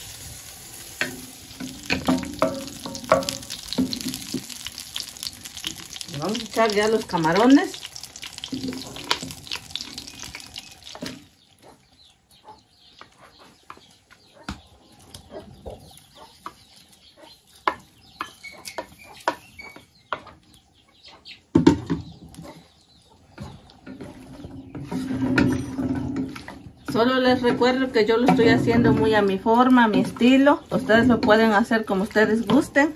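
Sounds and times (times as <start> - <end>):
shrimp sizzling in butter: 0.0 - 11.3.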